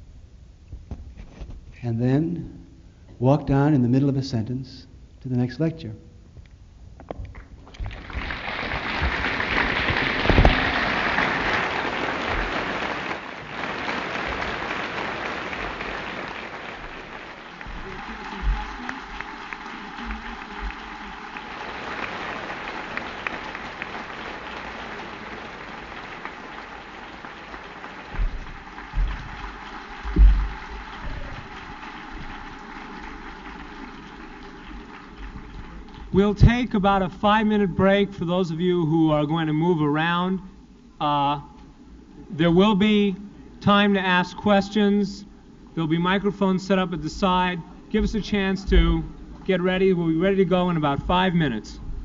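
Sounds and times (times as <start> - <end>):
audience applauding: 7.3 - 36.5
low thumps: 28.1 - 32.3.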